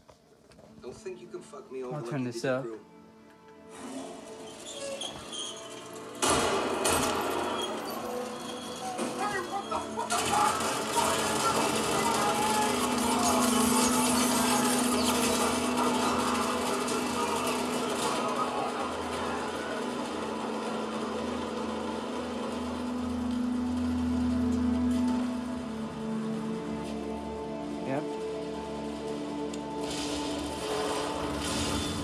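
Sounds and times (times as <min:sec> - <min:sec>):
action film soundtrack music: 0:00.4 - 0:32.0
man shouting: 0:09.3 - 0:14.8
steady low drone: 0:09.8 - 0:32.0.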